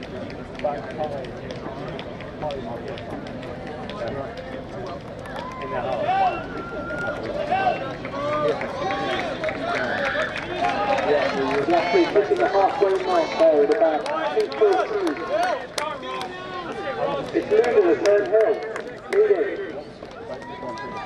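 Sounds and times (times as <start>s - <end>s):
spectators talking: 0.0s - 21.0s.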